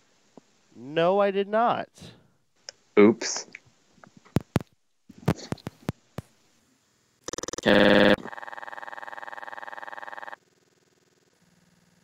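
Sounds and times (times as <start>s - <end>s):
fluttering electronic tone: 7.2s - 10.4s.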